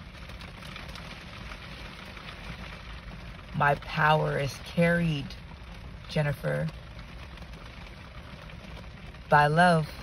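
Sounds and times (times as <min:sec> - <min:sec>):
low steady rumble: 0:00.0 - 0:10.0
rain on car roof: 0:00.0 - 0:10.0.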